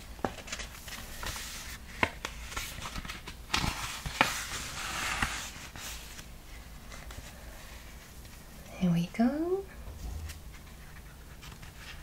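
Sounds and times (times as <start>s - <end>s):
paper pages rustling: 0.2s - 8.4s, 10.0s - 12.0s.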